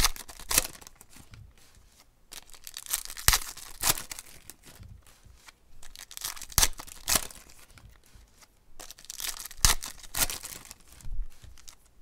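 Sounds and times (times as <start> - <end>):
foil wrapper tearing: 0.0 - 1.2, 2.4 - 4.6, 5.8 - 7.8, 8.8 - 11.8.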